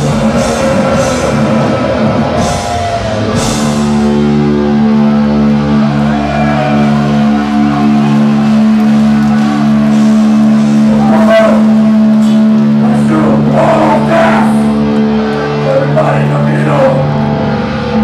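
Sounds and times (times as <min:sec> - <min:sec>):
crowd shouting and cheering: 0:00.0 - 0:18.0.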